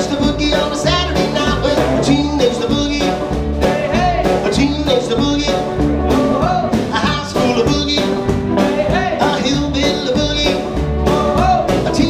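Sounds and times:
rockabilly band playing: 0.0s - 12.0s.

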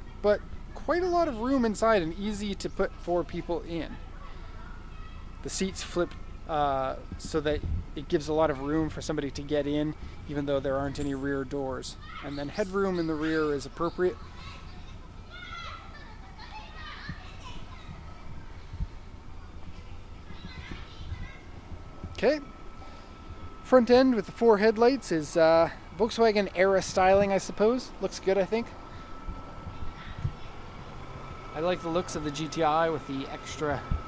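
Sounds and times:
low steady rumble: 0.0s - 34.0s
thin steady high tone: 0.0s - 34.0s
children calling out: 4.0s - 5.5s, 11.9s - 24.2s, 28.7s - 33.9s.

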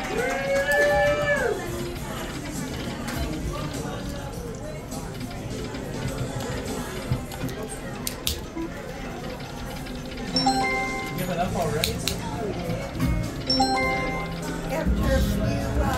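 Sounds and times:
background chatter: 0.0s - 15.9s
slot machine music: 8.8s - 15.9s.

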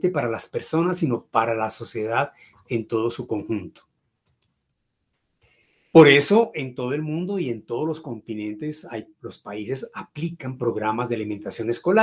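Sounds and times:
man's voice: 0.0s - 3.8s, 6.0s - 12.0s.

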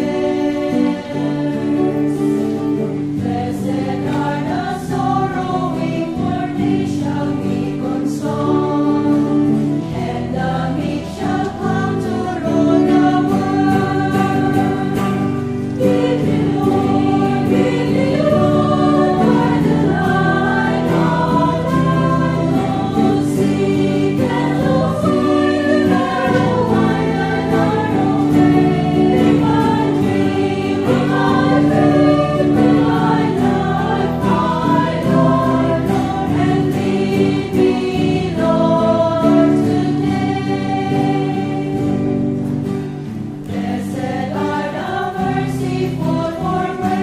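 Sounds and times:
church choir singing a hymn: 0.0s - 47.0s.

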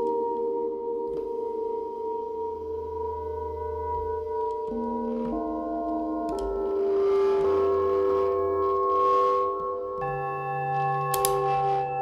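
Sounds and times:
synthesizer chord of sine tones: 0.0s - 12.0s
low hum: 2.2s - 12.0s.

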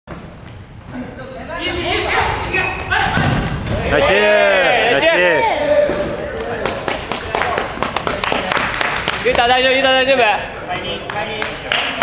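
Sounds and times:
sneaker squeaks: 0.1s - 4.2s
ball kicks and thuds: 3.1s - 3.8s.

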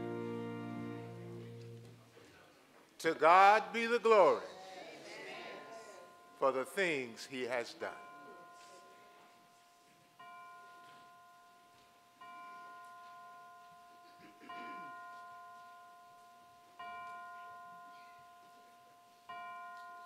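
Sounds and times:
bell-like chime: 5.6s - 20.0s.

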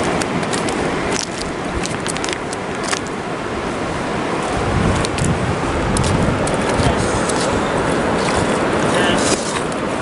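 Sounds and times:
river rushing over rocks: 0.0s - 10.0s.

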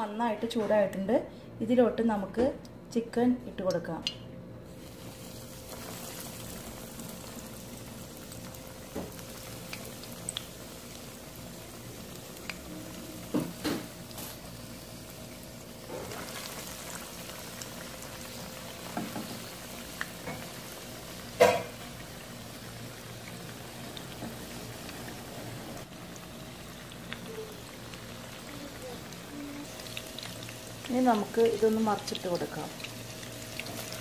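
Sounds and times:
food deep-frying in oil: 4.7s - 34.0s.

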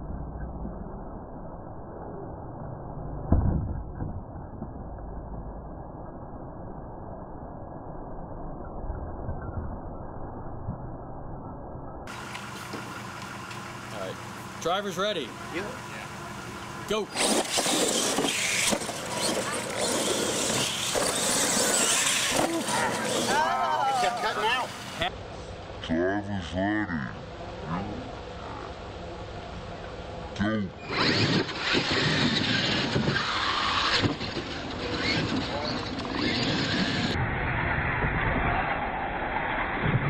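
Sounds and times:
tyres spraying dirt: 12.1s - 25.1s
toy truck motors whining: 15.5s - 25.0s, 30.8s - 37.2s.

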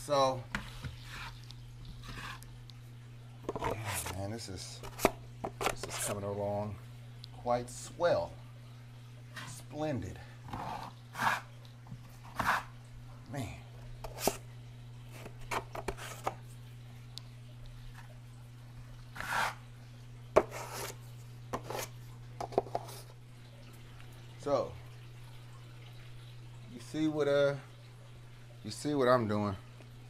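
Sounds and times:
steady low hum: 0.0s - 30.0s
taping knife scraping drywall: 19.2s - 19.6s.

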